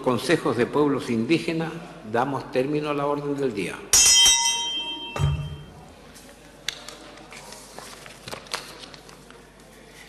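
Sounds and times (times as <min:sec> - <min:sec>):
bell ringing: 0:04.0 - 0:05.8.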